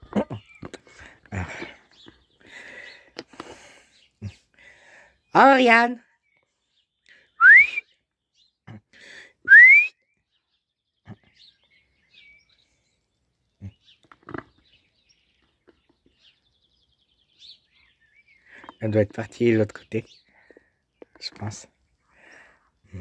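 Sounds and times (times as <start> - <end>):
person whistling upward: 7.4 - 7.8, 9.5 - 10.0.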